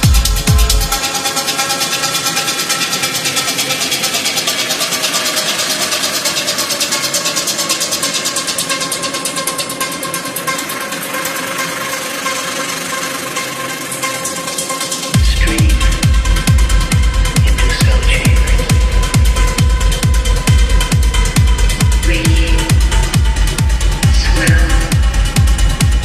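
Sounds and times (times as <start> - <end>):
fast ticking pulse: 0.0 - 26.0.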